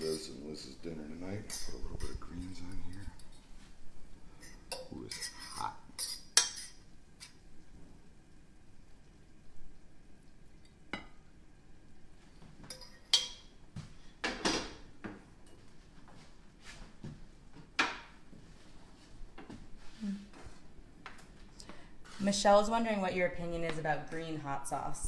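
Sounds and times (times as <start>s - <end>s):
metal utensil scraping metal pan: 4.4s - 6.8s.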